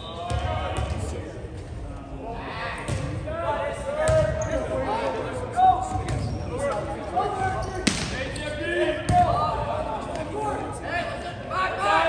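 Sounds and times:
spectators' voices echoing: 0.0 - 12.0.

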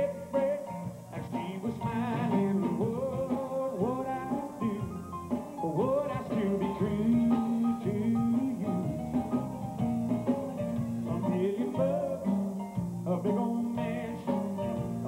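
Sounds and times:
country band instrumental: 0.0 - 15.0.

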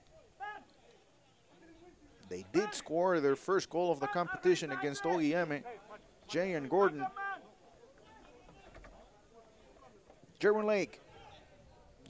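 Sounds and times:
players shouting: 0.2 - 8.9.

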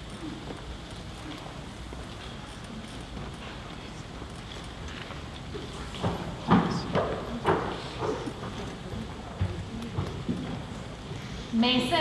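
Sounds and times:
faint voices: 0.0 - 11.7.

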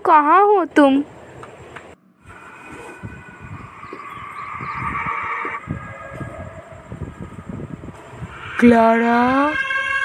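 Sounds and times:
eerie high held tones: 2.0 - 10.0.

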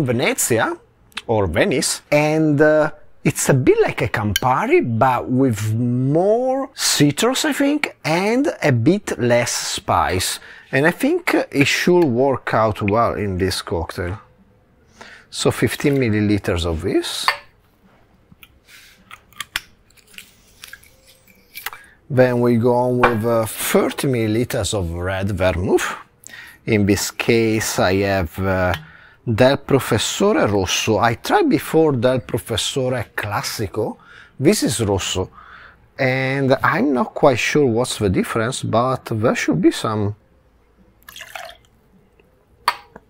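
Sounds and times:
bottle cap clicking and scraping: 18.4 - 21.8
liquid trickling into jigger: 41.0 - 41.8.

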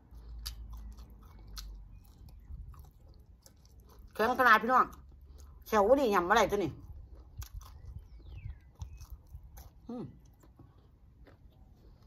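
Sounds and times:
chewing and biting food: 0.0 - 12.0.

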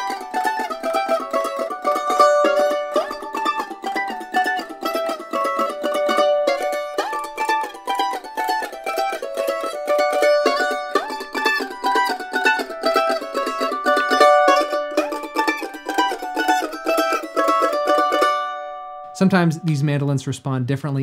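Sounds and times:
mandolin fast-picked double stops: 0.0 - 20.1.

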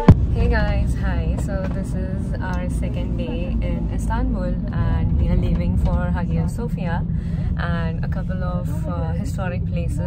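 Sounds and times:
car engine and road rumble: 0.0 - 10.0
woman talking: 0.3 - 10.0.

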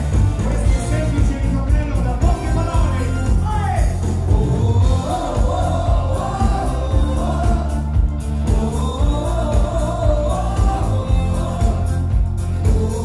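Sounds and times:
live band playing dance music: 0.0 - 13.0
man singing into microphone: 0.4 - 13.0.

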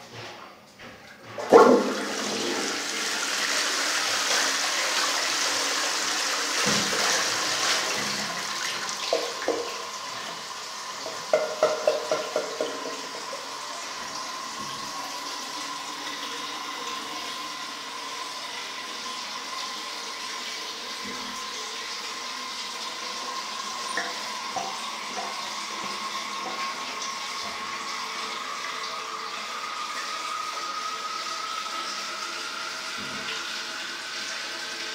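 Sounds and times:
toilet flush clunk: 0.1 - 17.4, 18.4 - 28.6, 32.7 - 34.9
water rushing through toilet bowl: 1.2 - 34.9
water gurgling: 1.4 - 3.1, 6.0 - 31.7.

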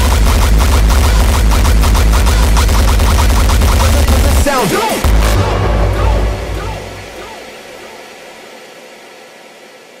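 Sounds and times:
heavy bass hit: 0.0 - 7.5.

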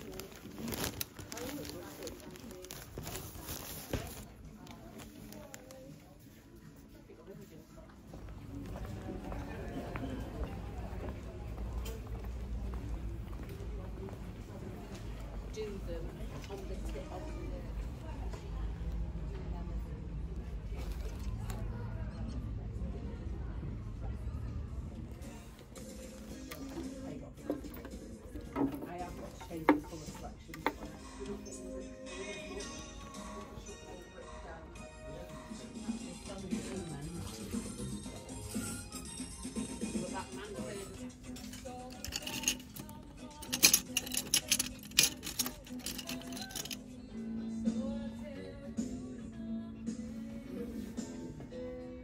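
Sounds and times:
faint background music: 0.0 - 52.0
faint voices of passers-by: 0.0 - 52.0
wooden hangers clicking and knocking: 41.3 - 46.8.

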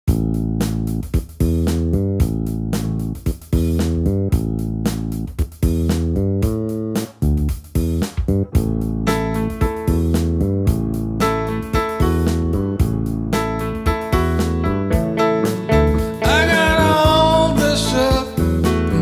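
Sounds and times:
blues guitar: 0.1 - 19.0
plucked bass guitar riff: 0.1 - 19.0
higher guitar notes: 7.8 - 19.0.

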